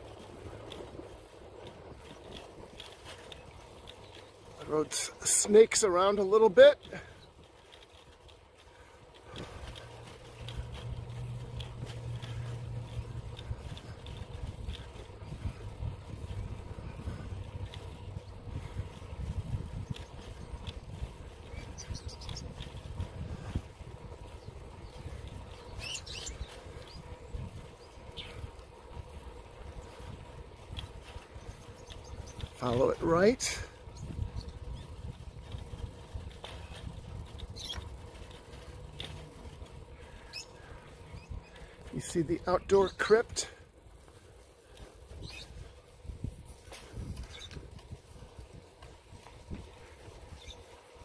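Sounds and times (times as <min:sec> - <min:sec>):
footsteps on asphalt: 0:00.0 - 0:51.0.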